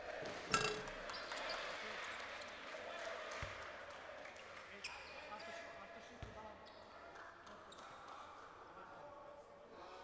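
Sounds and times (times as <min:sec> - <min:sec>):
basketball clanging off rim: 0:00.5 - 0:00.9.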